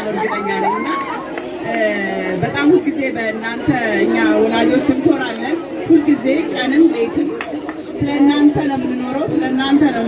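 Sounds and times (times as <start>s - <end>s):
woman talking into microphone: 0.0s - 10.0s.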